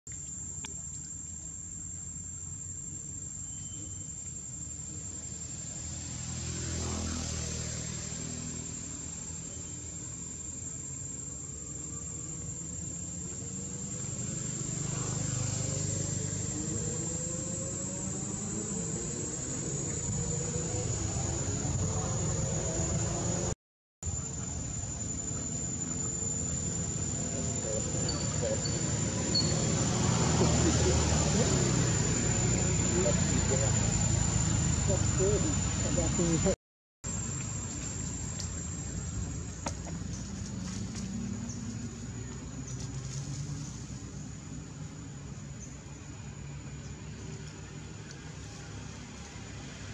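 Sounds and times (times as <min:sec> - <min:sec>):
high-pitched insect trill: 0:00.1 - 0:49.9.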